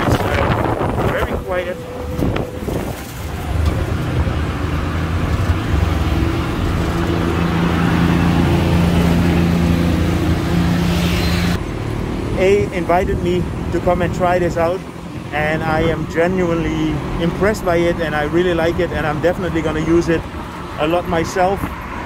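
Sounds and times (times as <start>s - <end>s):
low engine drone: 0.0s - 22.0s
road and wind noise: 0.0s - 22.0s
road traffic: 0.0s - 22.0s.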